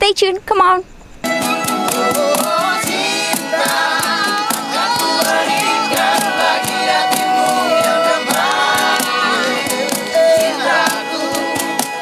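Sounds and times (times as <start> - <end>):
cajon beat: 1.2 - 12.0
strummed acoustic guitar: 1.2 - 12.0
group singing in unison: 1.4 - 12.0.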